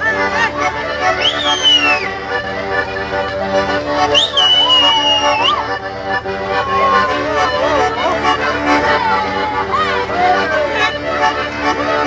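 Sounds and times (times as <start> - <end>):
accordion folk dance music: 0.0 - 12.0.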